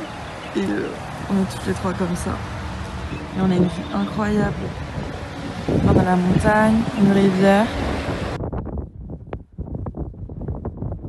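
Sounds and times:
wind buffeting a microphone: 0.0s - 11.0s.

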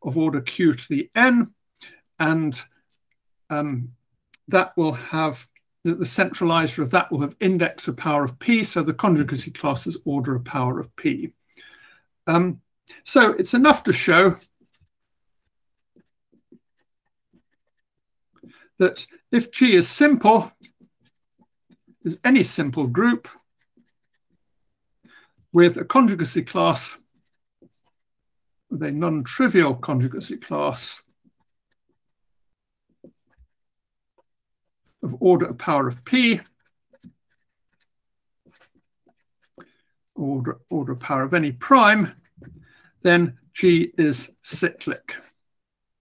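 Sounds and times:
felt-tip marker writing on paper: 14.4s - 18.5s, 20.5s - 22.5s, 23.3s - 24.6s, 27.0s - 28.2s, 31.0s - 35.0s, 36.0s - 39.6s.

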